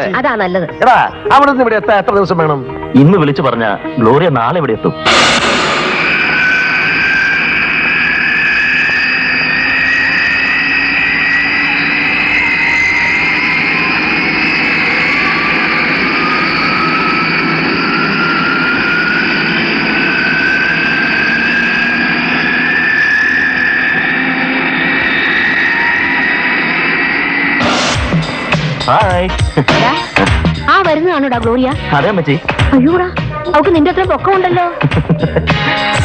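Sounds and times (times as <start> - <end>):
jet engines rushing and whining: 5.0 - 32.6.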